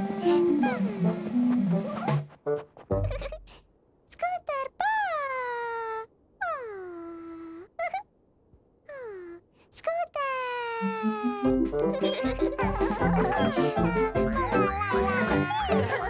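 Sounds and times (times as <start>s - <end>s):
cheerful children's music: 0.0s - 2.3s, 10.8s - 16.0s
high character voice calling: 0.2s - 1.2s, 10.7s - 16.0s.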